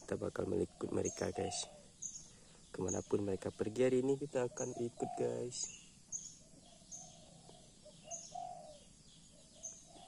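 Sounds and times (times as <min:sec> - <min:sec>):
dove cooing: 0:00.0 - 0:05.8, 0:06.4 - 0:10.0
small bird chirping: 0:00.0 - 0:10.0.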